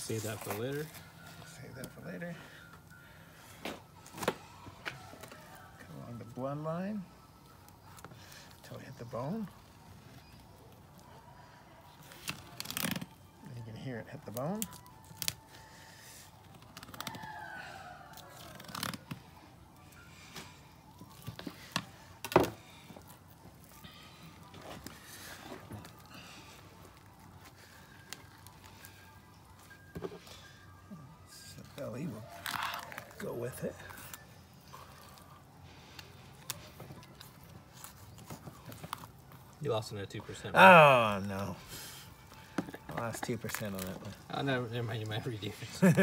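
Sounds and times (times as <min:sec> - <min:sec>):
flesh tearing: 0:12.0 - 0:13.2, 0:14.6 - 0:15.7, 0:16.4 - 0:19.4, 0:31.6 - 0:39.6.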